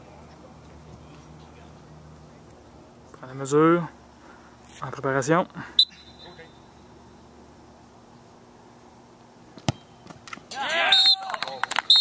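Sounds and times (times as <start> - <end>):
soccer ball kicked thud: 9.6 - 9.9
men shouting and cheering: 10.5 - 11.8.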